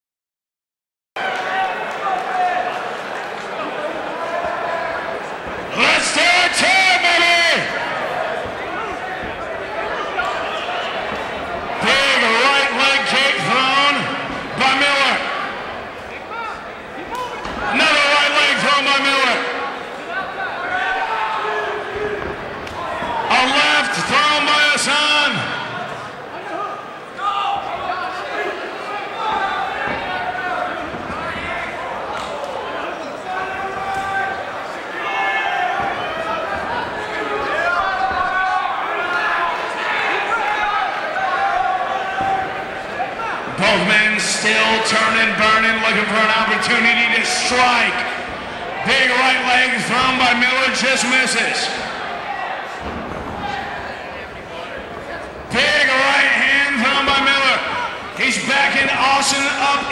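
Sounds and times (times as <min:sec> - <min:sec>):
man calling out in echoing hall: 0:05.7 - 0:07.9, 0:11.8 - 0:15.5, 0:17.2 - 0:19.8, 0:23.2 - 0:25.8, 0:43.2 - 0:48.2, 0:48.8 - 0:51.9, 0:55.5 - 0:59.9.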